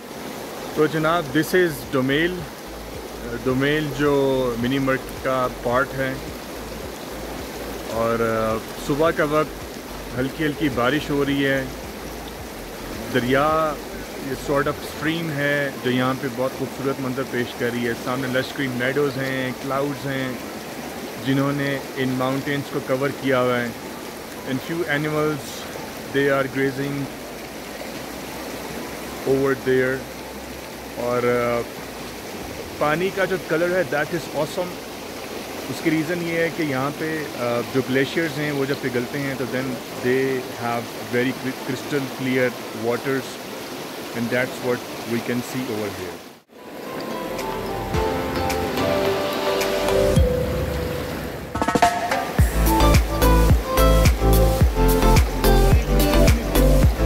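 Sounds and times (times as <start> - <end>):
mountain stream rushing over stones: 0.0 - 57.0
melodic held notes: 46.7 - 57.0
steady drum beat: 51.6 - 57.0.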